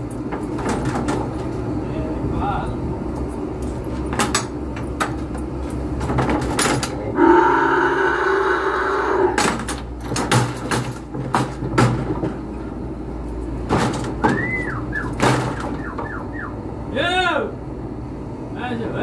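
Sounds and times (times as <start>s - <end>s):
metal gates knocking and clanking: 0.0s - 1.6s, 3.3s - 7.2s, 9.4s - 12.8s, 13.6s - 16.3s
calf bawling: 7.2s - 9.5s.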